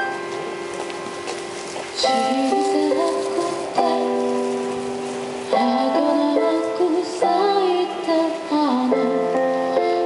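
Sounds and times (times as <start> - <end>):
electronic keyboard ballad: 0.0 - 10.0.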